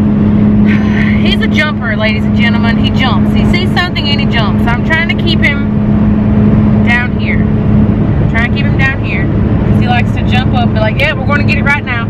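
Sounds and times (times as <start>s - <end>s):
truck engine and road drone: 0.0s - 12.0s
woman's voice: 0.7s - 5.7s, 6.8s - 7.5s, 8.3s - 12.0s.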